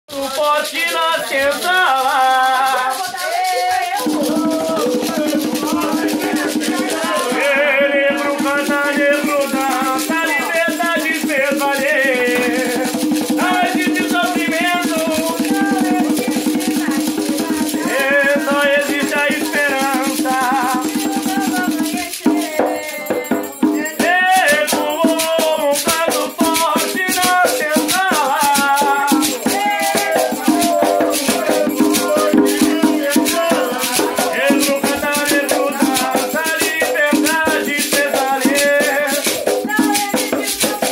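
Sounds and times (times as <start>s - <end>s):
man singing a chant: 0.1s - 16.6s, 17.3s - 23.2s, 23.8s - 40.9s
rattle shaking: 0.1s - 40.9s
hand drum: 1.5s - 40.9s.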